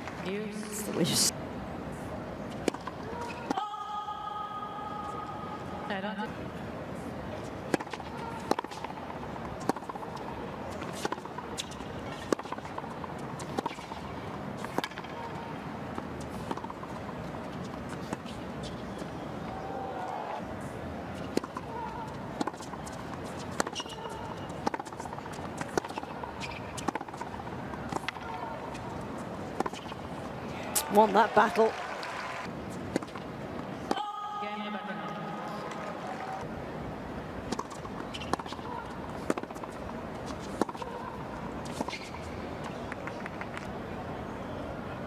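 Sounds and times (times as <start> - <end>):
tennis ball hit with rackets: 7.7 - 9.0, 9.6 - 18.8, 21.2 - 30.0, 37.5 - 43.6.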